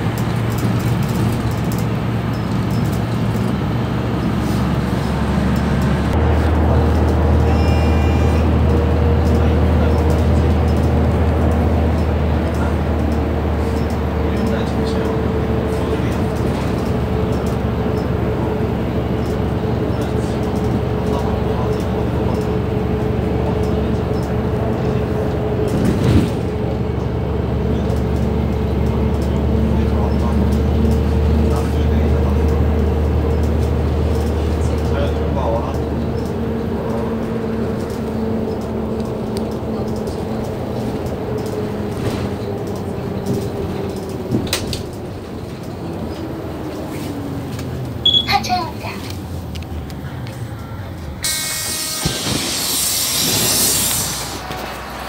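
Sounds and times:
bus engine whine: 0.0s - 55.0s
compressed air hiss: 51.2s - 54.4s.

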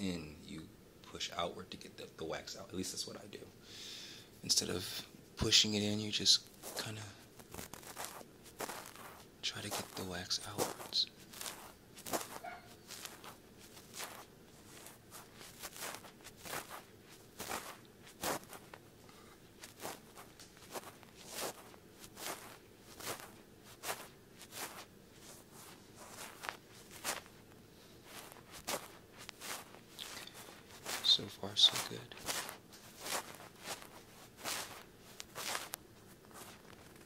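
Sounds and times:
cotton swab scraping microphone: 6.5s - 18.8s, 19.6s - 27.4s, 28.0s - 37.0s.

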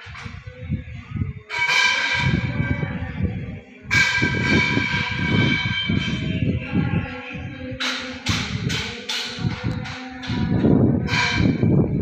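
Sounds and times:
large bell struck: 3.9s - 6.4s.

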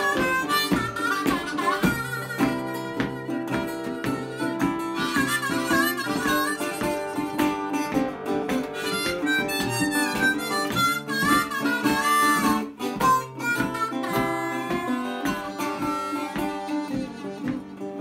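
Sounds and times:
fingerpicked resonator guitar: 0.0s - 18.0s
harmonica solo with bending notes: 0.0s - 18.0s.

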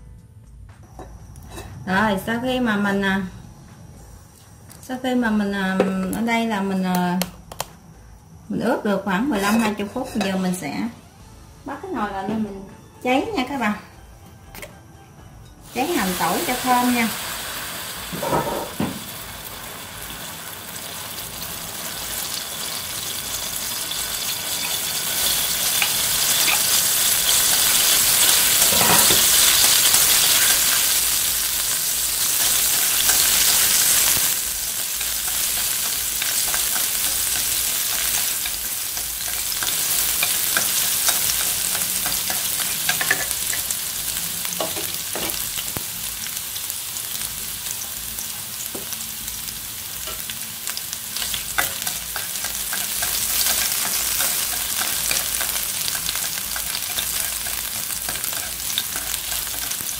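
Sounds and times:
food sizzling in hot oil: 15.6s - 59.9s
chopsticks clicking against pan: 51.6s - 59.8s.

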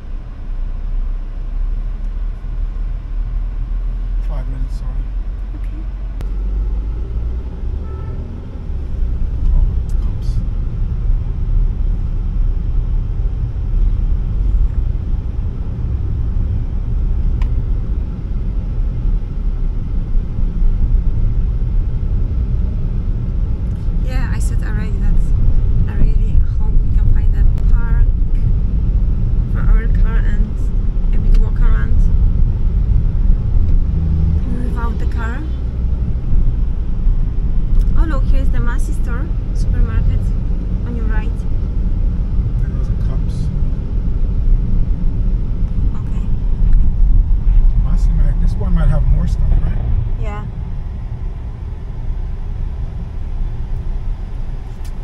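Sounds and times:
car rumble from inside cabin: 0.0s - 55.0s
voices: 4.2s - 6.0s, 24.0s - 28.5s, 29.5s - 32.1s, 34.4s - 35.6s, 37.8s - 41.5s, 45.9s - 46.4s, 47.7s - 50.5s.

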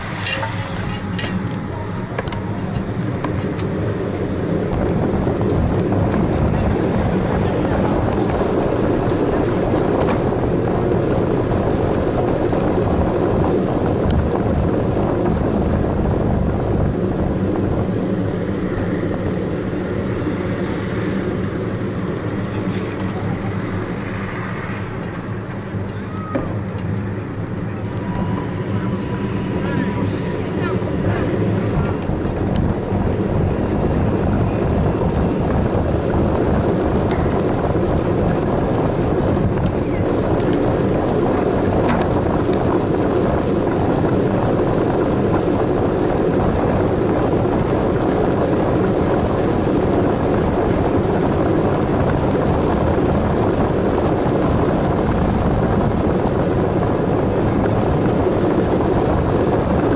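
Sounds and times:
bicycle tyres rumbling on road: 0.0s - 59.9s
wind rushing on microphone: 0.0s - 59.9s.

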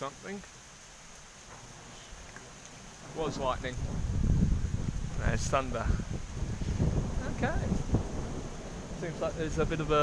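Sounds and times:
heavy rain hissing: 0.0s - 10.0s
thunder rumbling: 1.3s - 10.0s.

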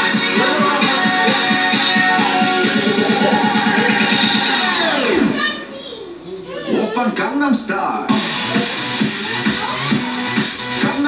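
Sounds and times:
dance music with a beat: 0.0s - 5.4s, 8.1s - 11.0s.

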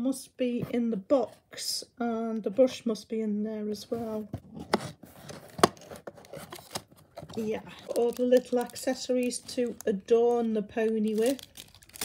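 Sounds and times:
cardboard scraping and rustling: 4.0s - 8.1s.

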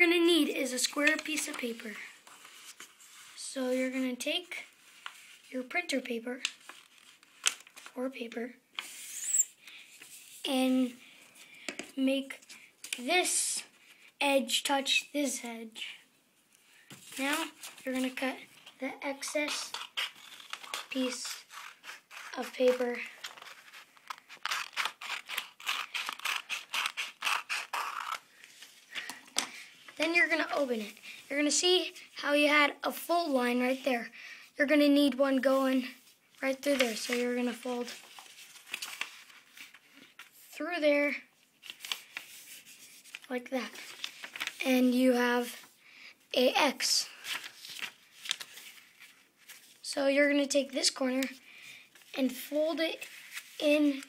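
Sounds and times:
paper rustling and crinkling: 0.8s - 3.5s, 4.6s - 5.5s, 6.4s - 8.0s, 16.9s - 30.9s, 36.5s - 40.4s, 41.6s - 44.6s, 47.1s - 49.8s, 53.0s - 54.0s
scissors snipping paper: 19.2s - 28.2s.

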